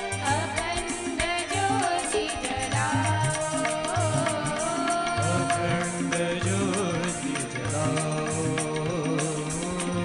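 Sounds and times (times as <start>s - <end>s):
devotional music with hand drums: 0.0s - 10.0s.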